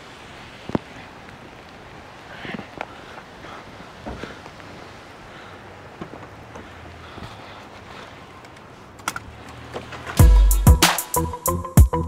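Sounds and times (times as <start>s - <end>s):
rain: 0.0s - 10.2s
wind: 0.0s - 12.0s.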